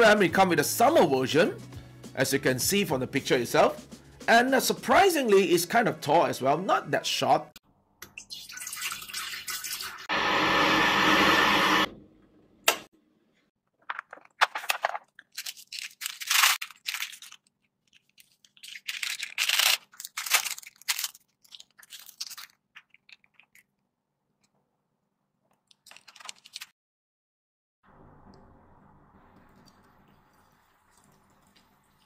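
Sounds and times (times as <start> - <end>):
water pouring into a kettle: 8.2 - 10.1
paper lid crinkling and rustling: 13.7 - 23.7, 25.7 - 26.7.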